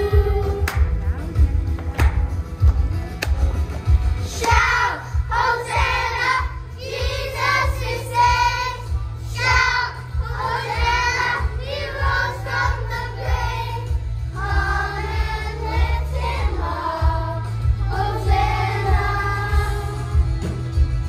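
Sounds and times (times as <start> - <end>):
backing music with beat and bass: 0.0 - 21.0
children singing in unison: 4.4 - 20.0.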